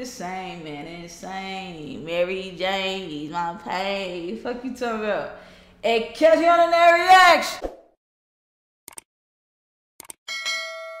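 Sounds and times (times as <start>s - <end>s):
notification bell ding: 10.3s - 11.0s.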